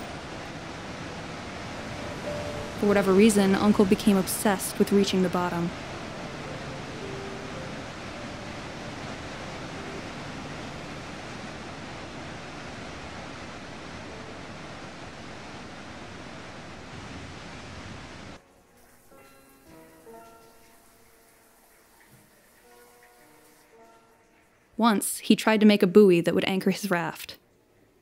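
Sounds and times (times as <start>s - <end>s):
soft music: 0.0s - 16.5s, 18.4s - 27.0s
water rushing over spillway: 0.0s - 24.4s.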